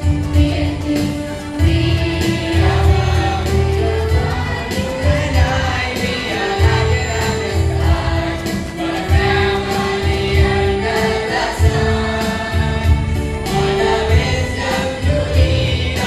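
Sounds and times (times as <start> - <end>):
children's choir singing: 0.0 - 16.0.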